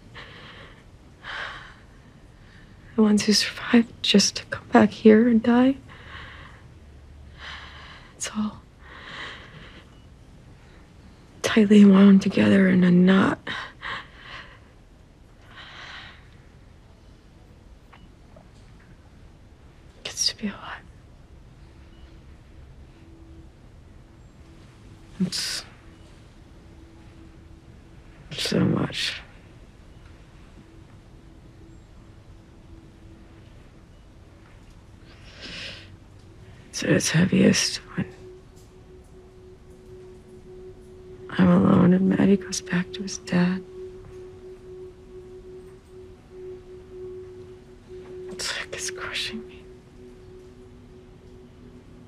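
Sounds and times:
person whispering: 0:20.0 - 0:20.9, 0:25.2 - 0:25.8, 0:36.7 - 0:39.1, 0:40.9 - 0:49.8
sustained soft musical note: 0:21.4 - 0:52.0.

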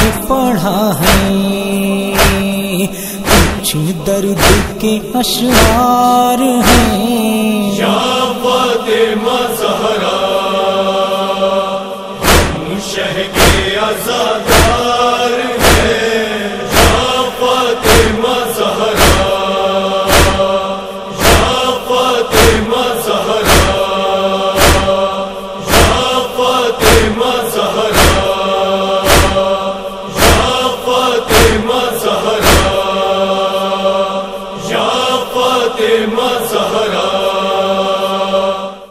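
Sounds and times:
wordless chorus chanting: 0:00.0 - 0:38.9
chest-beating thumps: 0:02.2 - 0:02.5, 0:03.2 - 0:03.7, 0:04.4 - 0:04.7, 0:05.5 - 0:05.8, 0:06.6 - 0:07.0, 0:12.2 - 0:12.6, 0:13.4 - 0:13.7, 0:19.0 - 0:19.3, 0:20.1 - 0:20.4, 0:21.2 - 0:21.6, 0:23.4 - 0:23.8, 0:24.6 - 0:24.9, 0:25.7 - 0:26.0, 0:27.9 - 0:28.3, 0:29.1 - 0:29.4, 0:30.2 - 0:30.5, 0:32.4 - 0:32.8.

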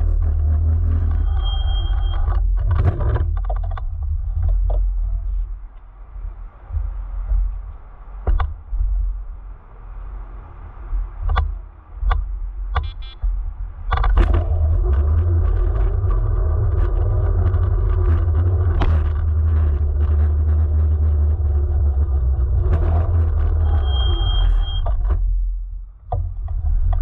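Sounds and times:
scooter tyre rumble on asphalt: 0:00.0 - 0:27.0
high steady beep: 0:23.7 - 0:24.9.

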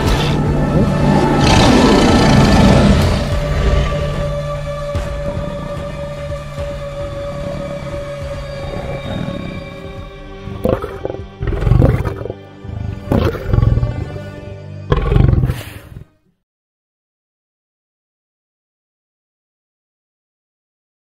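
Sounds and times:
lion roars: 0:00.0 - 0:04.1, 0:07.6 - 0:16.2
music with long held tones: 0:00.0 - 0:15.5.

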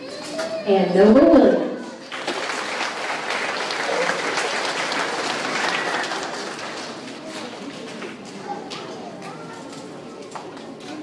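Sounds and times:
audience applauding: 0:02.1 - 0:08.2.

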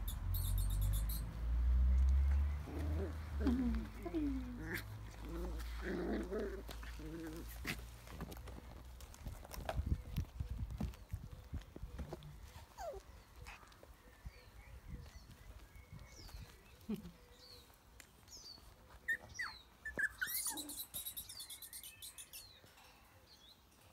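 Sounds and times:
bird chirping trill: 0:00.0 - 0:01.4, 0:18.4 - 0:23.6
puppies whining yips: 0:00.0 - 0:01.4, 0:12.0 - 0:13.6, 0:18.9 - 0:22.5.

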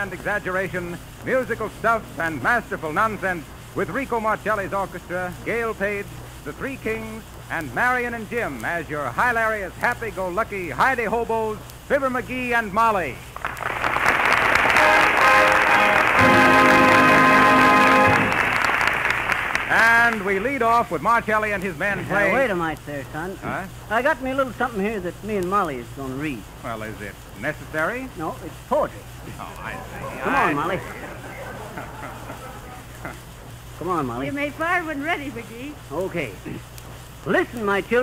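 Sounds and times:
radio recording hum and hiss: 0:00.0 - 0:38.0
audience applauding: 0:13.4 - 0:20.4, 0:29.3 - 0:33.2
orchestra playing held chord: 0:14.7 - 0:18.6
faint voices: 0:28.4 - 0:34.6.

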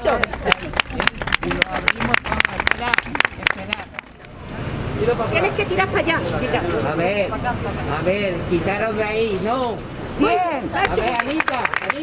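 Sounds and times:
group applauding: 0:00.0 - 0:04.4, 0:10.8 - 0:12.0
voices: 0:00.0 - 0:12.0.

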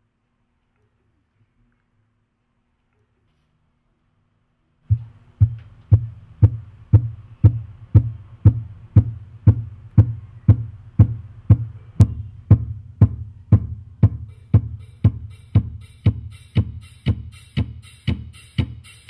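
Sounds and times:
electronic music with heavy kick: 0:04.9 - 0:19.0.

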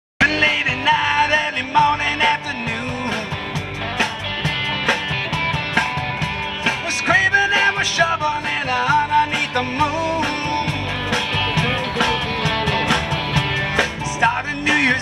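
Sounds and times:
lead guitar melody bending: 0:00.2 - 0:15.0
live rock band playing: 0:00.2 - 0:15.0.

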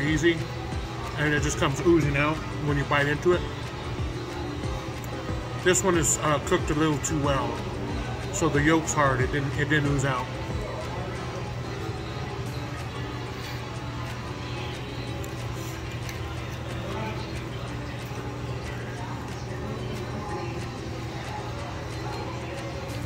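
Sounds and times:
background music: 0:00.0 - 0:23.0
restaurant room noise: 0:00.0 - 0:23.0.

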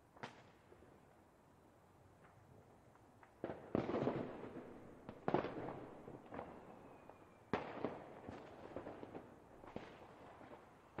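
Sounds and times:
firecracker pops and crackle: 0:00.0 - 0:00.7, 0:02.2 - 0:06.6, 0:07.5 - 0:11.0.

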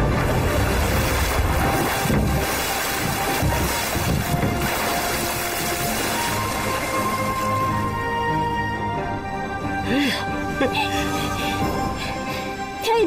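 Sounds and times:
background music: 0:00.0 - 0:13.0
water rushing and splashing: 0:00.0 - 0:13.0.

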